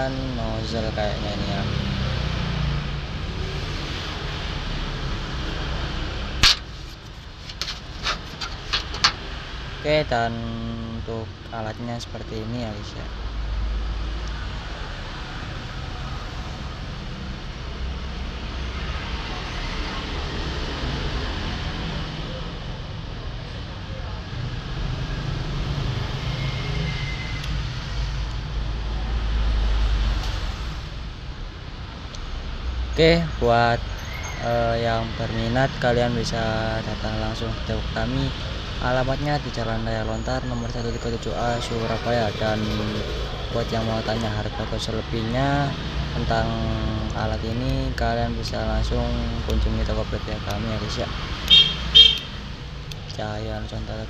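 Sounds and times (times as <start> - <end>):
road traffic rumble: 0.0 - 54.0
metal parts clicking: 6.4 - 9.3.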